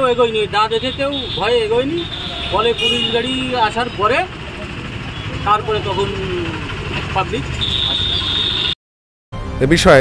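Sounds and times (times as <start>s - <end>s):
traffic engine rumble: 0.0s - 8.8s
man speaking: 5.4s - 7.4s.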